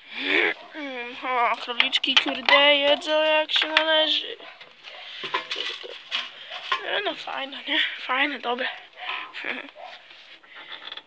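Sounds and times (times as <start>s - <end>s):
metal feeder clinking and rattling: 1.4s - 7.4s, 9.0s - 9.5s.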